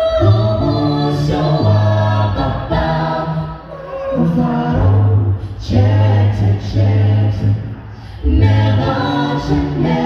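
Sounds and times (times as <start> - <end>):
a cappella gospel singing: 0.0 - 10.0.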